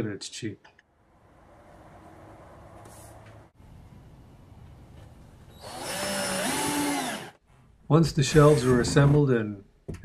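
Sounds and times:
cordless drill drilling into wood: 5.5s - 7.4s.

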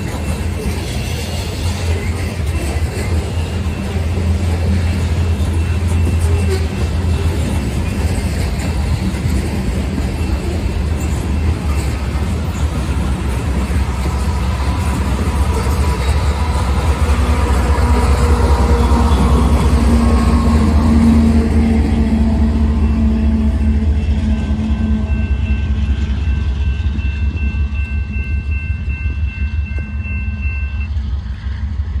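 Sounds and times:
locomotive engine hum: 0.0s - 32.0s
train wheels rolling on rail: 0.0s - 32.0s.

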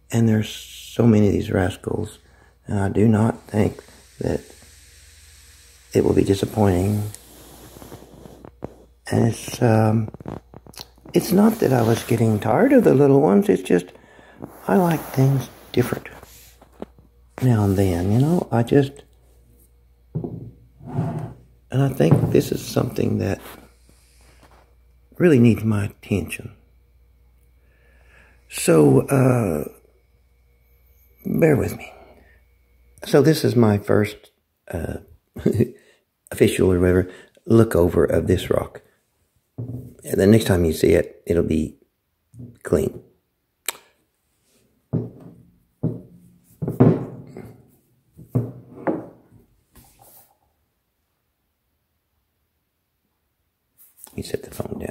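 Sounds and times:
stone knocking on wooden table: 20.2s - 20.5s
sharp click: 43.6s - 44.0s.

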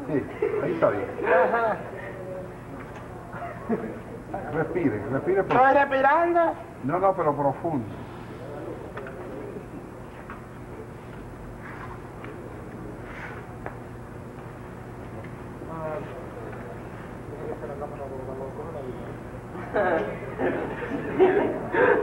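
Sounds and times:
steady low hum: 0.0s - 22.0s
soft murmured voice: 14.8s - 22.0s.

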